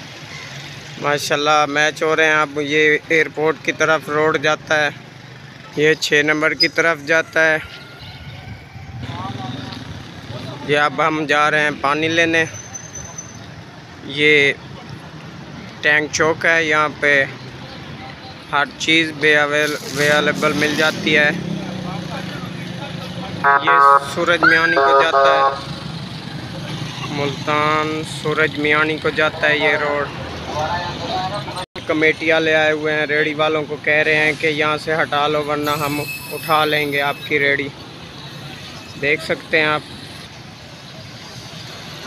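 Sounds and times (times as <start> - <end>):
road noise: 0.0 - 42.0
street traffic: 0.0 - 42.0
vehicle engines running: 0.0 - 42.0.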